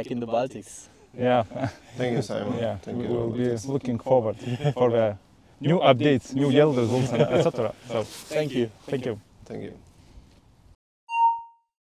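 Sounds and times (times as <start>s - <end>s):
faint outdoor hiss: 0.0s - 10.8s
bright chime ding: 11.1s - 11.7s.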